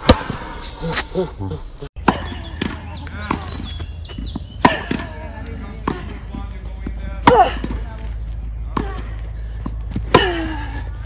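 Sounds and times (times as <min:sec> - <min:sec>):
tennis racket hitting ball: 0:02.0 - 0:08.0.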